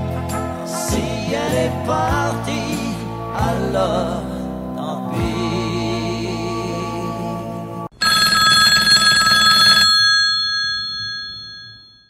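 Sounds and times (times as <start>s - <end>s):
telephone bell ringing: 7.9s - 12.0s.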